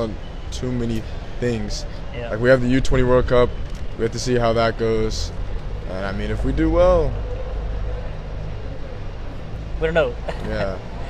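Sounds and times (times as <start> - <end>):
road traffic rumble: 0.0 - 11.0
man speaking: 9.8 - 11.0.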